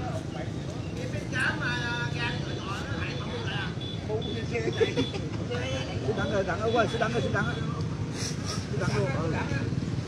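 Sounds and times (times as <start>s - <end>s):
motorbike traffic rumble: 0.0s - 10.0s.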